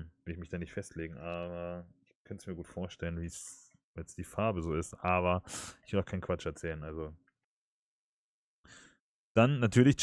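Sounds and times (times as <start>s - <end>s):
soft intake of breath: 5.4s - 5.8s.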